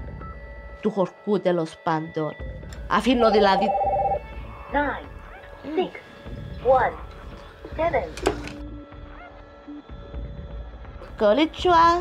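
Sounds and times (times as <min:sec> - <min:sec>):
steady low dial tone: 0:03.2 - 0:04.2.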